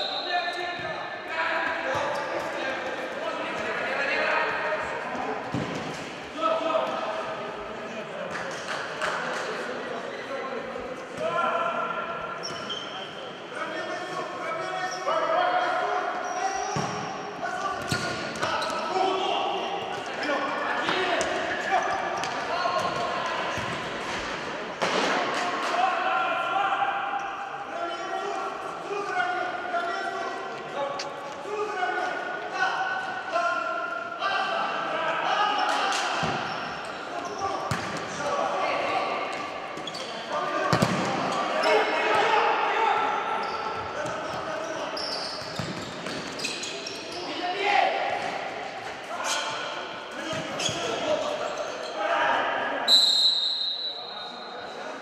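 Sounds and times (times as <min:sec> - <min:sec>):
players shouting in hall: 0:25.5 - 0:30.2, 0:40.3 - 0:45.0.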